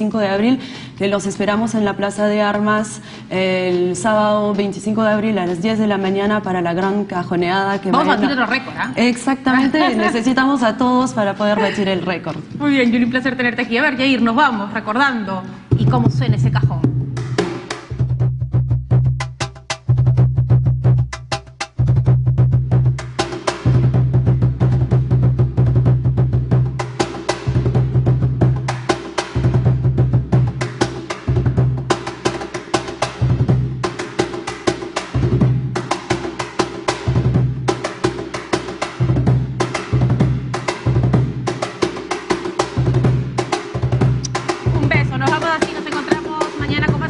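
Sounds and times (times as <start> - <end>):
cajon played by hand: 3.5 - 12.4, 23.0 - 47.0.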